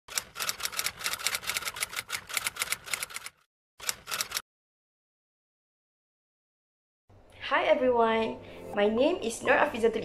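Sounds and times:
rapid sharp clicks: 0.1s - 4.4s.

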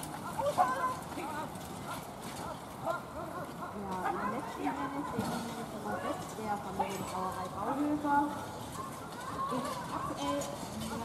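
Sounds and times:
horse hoofbeats trotting: 0.0s - 11.0s.

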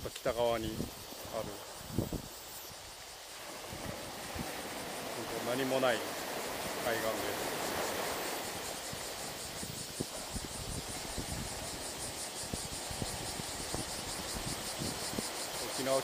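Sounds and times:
wind bumps on microphone: 0.0s - 2.5s, 3.4s - 16.0s
insects chirping: 0.0s - 16.0s
small waves washing on rocks: 3.0s - 16.0s.

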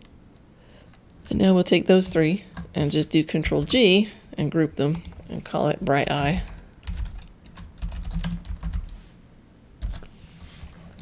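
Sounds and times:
typing on computer keyboard: 6.3s - 9.0s, 9.8s - 10.1s.

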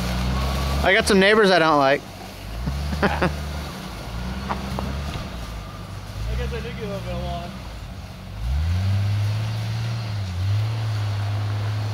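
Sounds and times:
car engine running at low revs: 0.0s - 11.9s.

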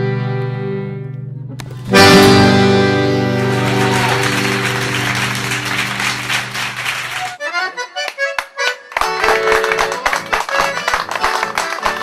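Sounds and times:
acoustic guitar and bass: 0.0s - 7.3s
accordion: 0.0s - 12.0s.

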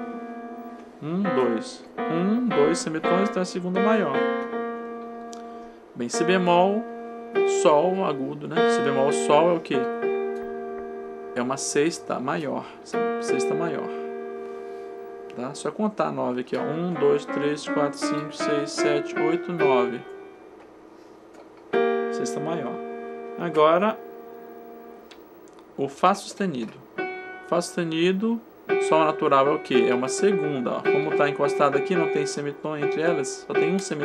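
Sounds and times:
electronic keyboard piano notes: 0.0s - 34.0s.

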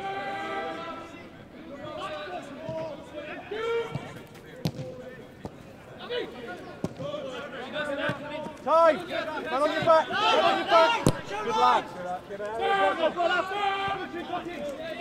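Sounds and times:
footballers shouting: 0.0s - 15.0s
football being kicked: 3.9s - 5.0s, 11.0s - 11.5s.

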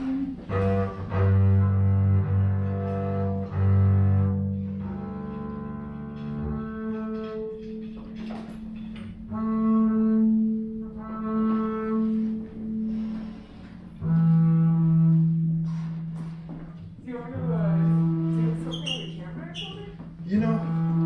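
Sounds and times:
bowed double bass notes: 0.0s - 21.0s.

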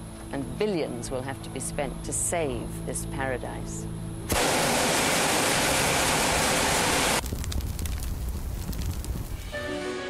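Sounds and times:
burning wood crackling and popping: 4.3s - 9.6s
roar of bonfire flames: 4.3s - 9.6s.

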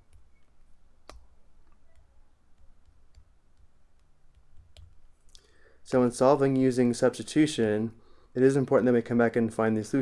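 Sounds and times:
stylus tapping on tablet screen: 0.0s - 5.2s.

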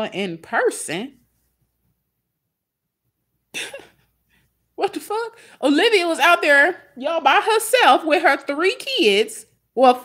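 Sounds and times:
person coughing: 3.6s - 4.1s.

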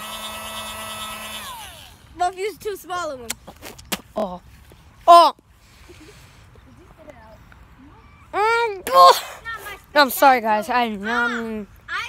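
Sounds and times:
small electric motor whirring: 0.0s - 2.2s.

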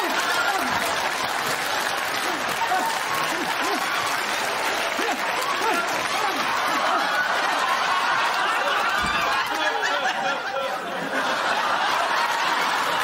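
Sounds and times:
audience applauding: 0.0s - 13.0s
crowd laughs and cries: 0.0s - 13.0s.

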